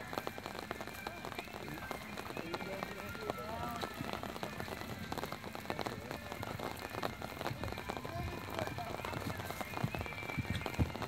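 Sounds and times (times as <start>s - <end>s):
crackling outdoor noise: 0.0s - 11.0s
faint voices: 0.0s - 11.0s
horse hooves cantering on sand: 0.0s - 11.0s.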